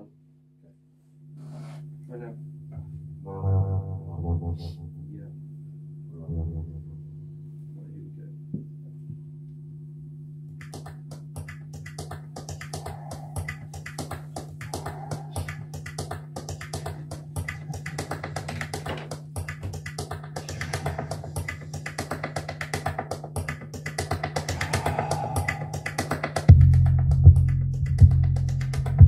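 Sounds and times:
low electronic drone: 3.2s - 7.2s, 12.6s - 29.0s
rapid electronic clicks and crackles: 10.6s - 24.8s.

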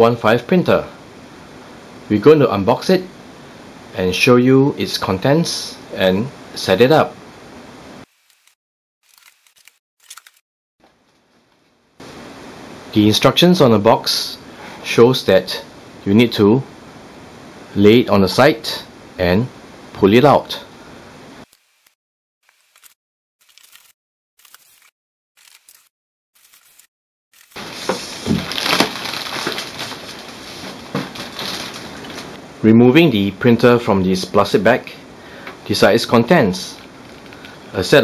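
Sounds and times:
packing tape being cut open: 8.1s - 10.4s, 21.5s - 32.4s
faint background hiss: 12.0s - 21.2s, 27.6s - 38.0s.

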